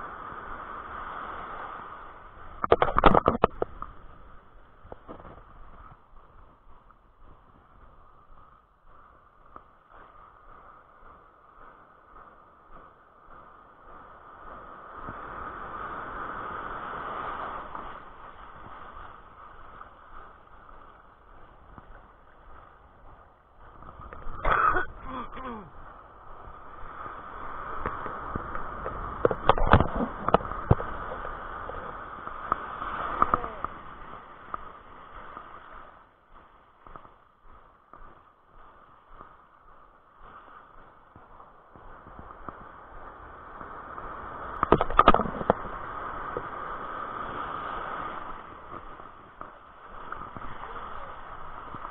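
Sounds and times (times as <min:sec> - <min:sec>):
muffled surf washing: 0:00.0 - 0:51.9.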